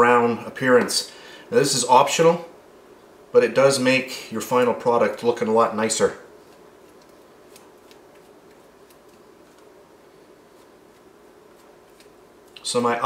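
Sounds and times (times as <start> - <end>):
low room hum: 0.0 - 13.0
pastry brush dabbing dough: 5.2 - 12.7.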